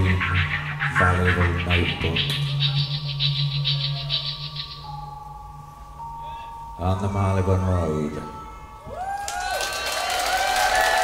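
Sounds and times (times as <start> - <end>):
pulsing high synthesizer texture: 0.0 - 8.8
sustained synthesizer tones: 0.0 - 9.0
low synthesizer drone: 0.0 - 9.1.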